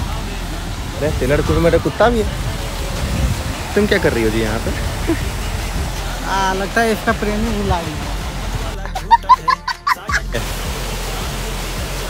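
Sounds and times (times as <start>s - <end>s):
steady rushing noise: 0.0s - 12.0s
child laughing: 5.0s - 5.3s, 8.8s - 10.4s.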